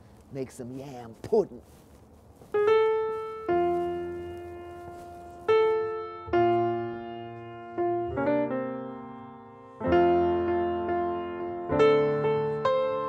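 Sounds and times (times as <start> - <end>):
slow piano music: 2.4 - 13.0.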